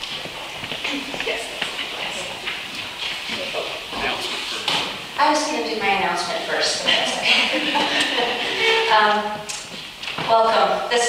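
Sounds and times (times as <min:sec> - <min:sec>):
woman talking into microphone: 0:00.8 - 0:02.4, 0:05.2 - 0:08.0, 0:08.6 - 0:09.5, 0:10.2 - 0:11.0
woman laughing: 0:06.8 - 0:09.2.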